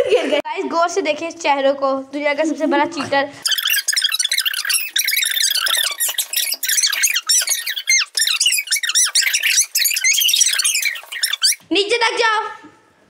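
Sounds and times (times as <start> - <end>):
rapid high-pitched squeaks and chirps: 3.4 - 11.6.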